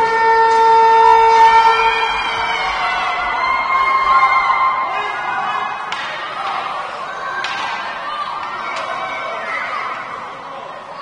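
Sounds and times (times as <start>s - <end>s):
goal horn steady tone: 0.0s - 2.8s.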